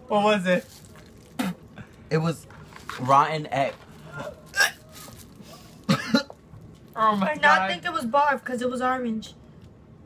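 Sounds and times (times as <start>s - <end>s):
person coughing: 1.4s - 1.6s, 4.5s - 4.9s, 5.8s - 6.4s.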